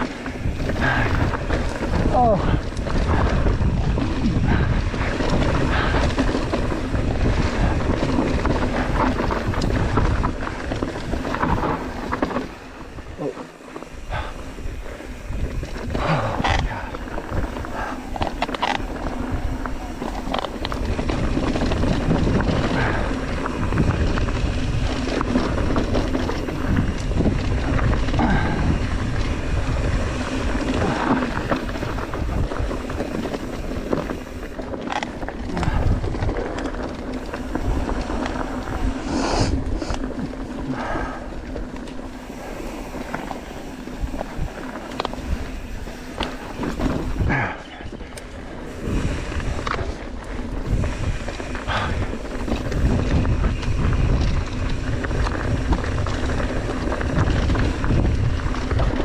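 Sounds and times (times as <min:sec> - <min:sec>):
bike chain rattling: 0:00.0 - 0:59.0
tyres rolling over dirt and stones: 0:00.0 - 0:59.0
wind buffeting microphone: 0:00.0 - 0:59.0.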